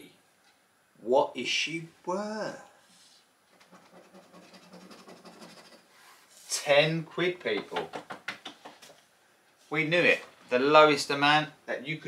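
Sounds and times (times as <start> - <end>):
coin scratching scratchcard: 3.6 - 5.9.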